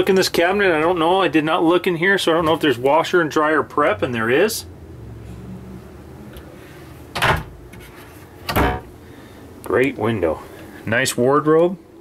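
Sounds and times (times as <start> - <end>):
wooden cabinet door shutting: 7.1 - 7.5, 8.5 - 8.9.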